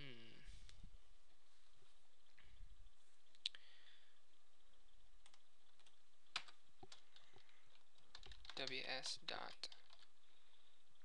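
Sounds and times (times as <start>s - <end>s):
computer clicks: 5.2s - 10.1s.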